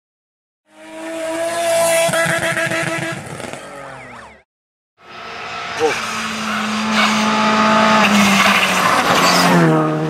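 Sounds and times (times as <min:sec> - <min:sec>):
racing car engine revving: 0:00.7 - 0:04.4, 0:05.0 - 0:10.0.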